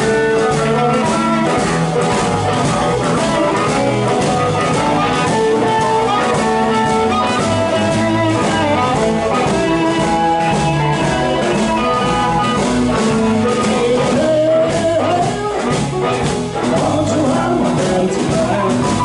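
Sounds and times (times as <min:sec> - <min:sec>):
bass: 0:00.0 - 0:19.0
blues harmonica notes: 0:00.0 - 0:19.0
drum kit: 0:00.0 - 0:19.0
electric guitar: 0:00.0 - 0:19.0
piano: 0:00.0 - 0:19.0.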